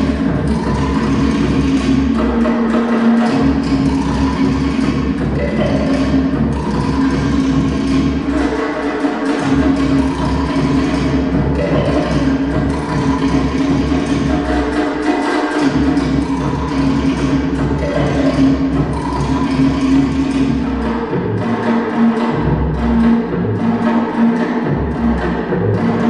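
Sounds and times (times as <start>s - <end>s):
fast wooden slit-drum beats: 0.0s - 26.0s
low drum: 0.0s - 26.0s.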